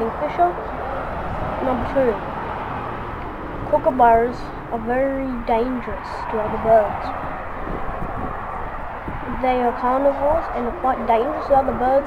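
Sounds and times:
distant road traffic: 0.0 - 12.0.

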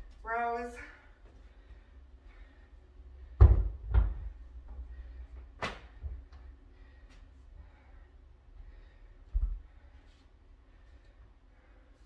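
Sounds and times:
kettlebells thudding on a mat: 3.4 - 4.4.

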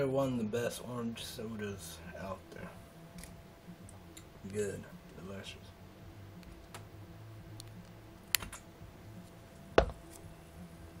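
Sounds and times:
bottle knock: 9.8 - 10.0.

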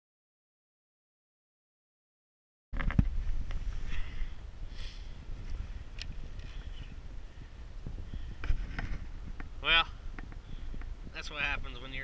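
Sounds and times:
wind buffeting microphone: 2.8 - 12.0.

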